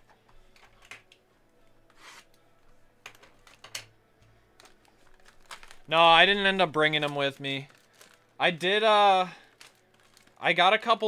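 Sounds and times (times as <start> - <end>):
plastic shrink wrap crinkling: 4.6 - 10.7.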